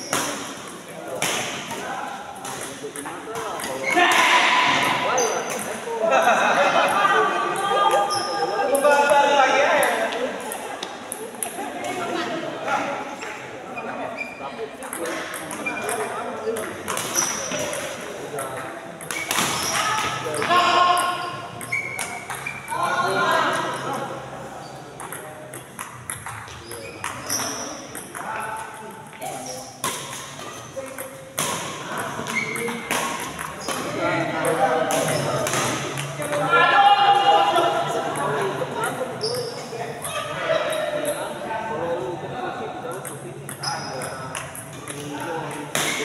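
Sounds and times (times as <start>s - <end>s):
rackets hitting shuttlecock: 0.0s - 1.8s, 14.8s - 22.8s, 25.0s - 28.4s, 29.3s - 36.5s, 42.9s - 46.0s
people talking: 0.0s - 46.0s.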